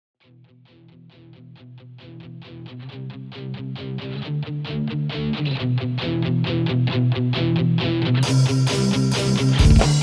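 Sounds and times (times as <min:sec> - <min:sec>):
guitar picking quick notes: 0:09.4 - 0:10.0.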